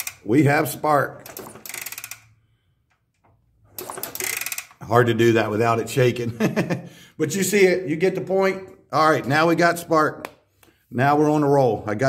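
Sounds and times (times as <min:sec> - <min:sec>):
engine kick-start clicking: 0:02.9 - 0:04.8.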